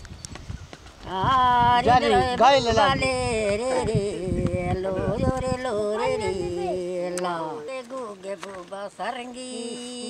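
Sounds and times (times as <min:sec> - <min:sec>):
person singing: 0:01.1 - 0:10.0.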